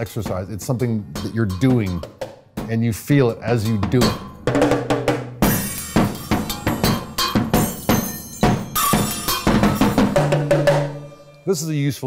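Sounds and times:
drum kit beat: 0:00.0 - 0:11.6
low drum ringing: 0:03.5 - 0:11.2
cymbals: 0:03.6 - 0:11.9.

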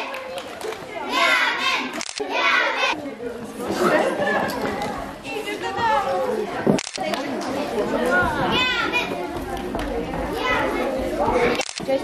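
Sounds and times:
girls chattering excitedly: 0:00.0 - 0:12.0.

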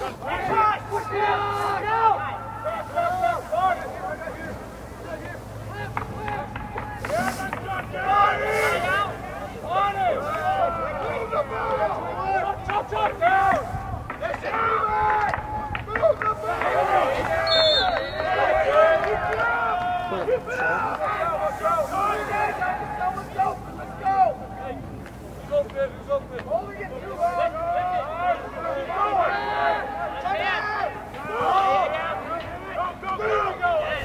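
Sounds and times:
crowd shouting: 0:00.0 - 0:24.8, 0:27.0 - 0:34.0.

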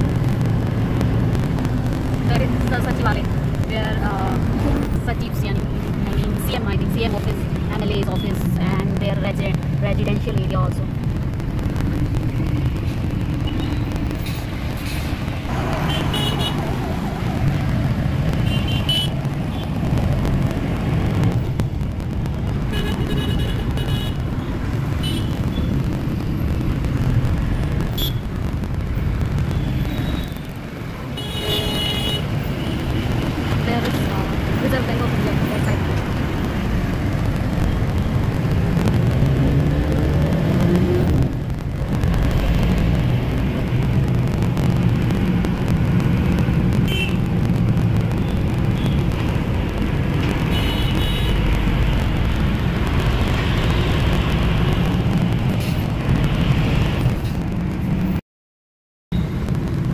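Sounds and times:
engine and road rumble: 0:00.0 - 0:58.2, 0:59.1 - 0:59.9
vehicle horns: 0:15.6 - 0:16.6, 0:18.4 - 0:19.7, 0:22.7 - 0:24.2, 0:25.0 - 0:25.6, 0:27.9 - 0:28.2, 0:31.2 - 0:33.1, 0:46.8 - 0:47.2, 0:50.5 - 0:51.4.

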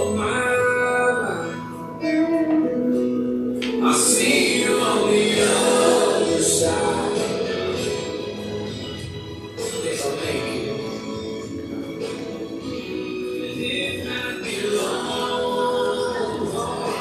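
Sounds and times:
recorded song accompaniment: 0:00.0 - 0:17.0.

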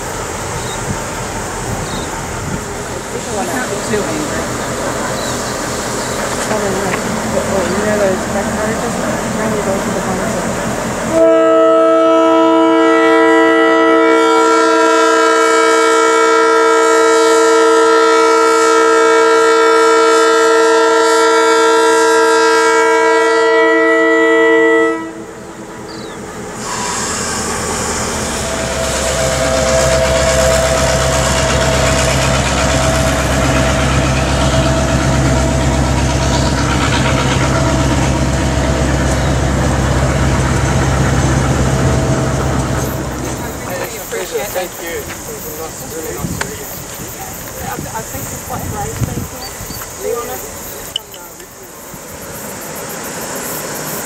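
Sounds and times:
train wheel noise: 0:00.0 - 0:54.0
locomotive horn chord: 0:11.1 - 0:25.4, 0:26.6 - 0:43.1.

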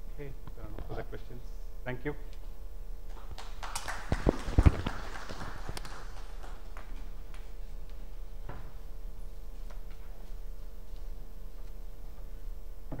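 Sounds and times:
faint steady hum: 0:00.0 - 0:13.0
microphone rustling: 0:04.1 - 0:05.0.

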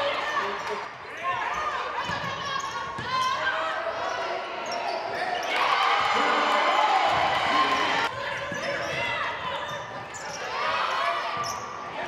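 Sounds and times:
voices in gym: 0:00.0 - 0:12.0.

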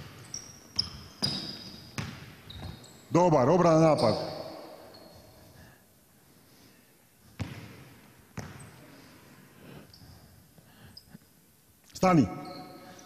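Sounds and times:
basketball bouncing on hardwood: 0:02.0 - 0:02.8, 0:07.4 - 0:07.8, 0:08.4 - 0:08.6
faint short squeaks: 0:12.3 - 0:13.0.

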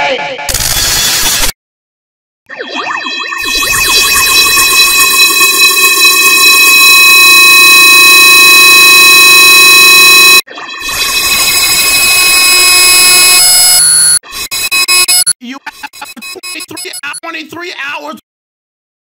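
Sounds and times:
loud distorted electronic noise: 0:03.6 - 0:13.6.

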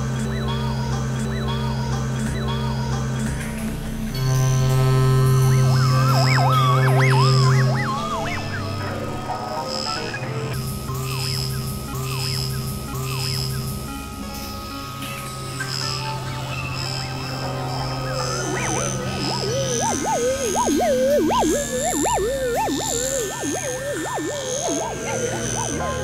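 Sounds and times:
low pulsing synth drone: 0:00.0 - 0:26.0
warbling siren-like synth tone: 0:04.1 - 0:10.6, 0:11.4 - 0:26.0
short high synth blips: 0:19.3 - 0:26.0.

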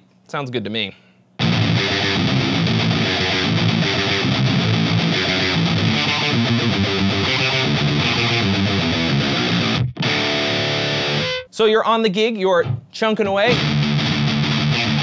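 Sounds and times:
distorted electric guitar riffs: 0:01.4 - 0:11.5, 0:12.6 - 0:15.0.

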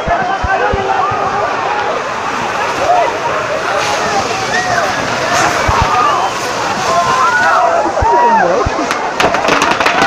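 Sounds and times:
crowd shouting: 0:00.0 - 0:09.2
fireworks hissing and crackling: 0:00.5 - 0:10.0.

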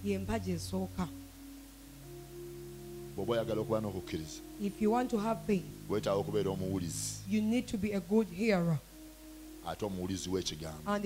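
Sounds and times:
soft background music chords: 0:00.0 - 0:11.0.

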